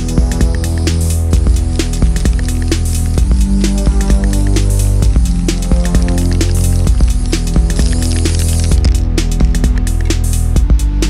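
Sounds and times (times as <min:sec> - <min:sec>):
electronic music with steady beat: 0:00.0 - 0:11.0.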